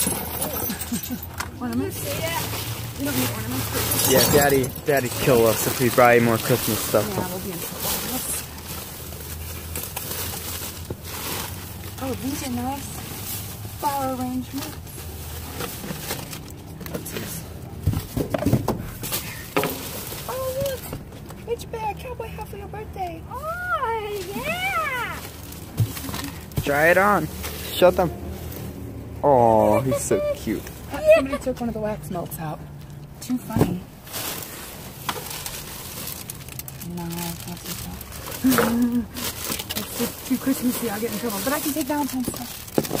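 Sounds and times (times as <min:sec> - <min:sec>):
plastic bagging crinkling: 0:02.4 - 0:11.9, 0:34.0 - 0:43.0.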